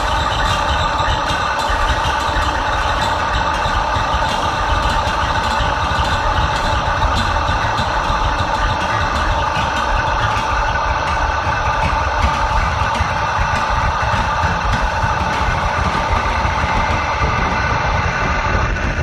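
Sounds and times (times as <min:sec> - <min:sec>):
dense drone with low rumble: 0:00.0 - 0:19.0.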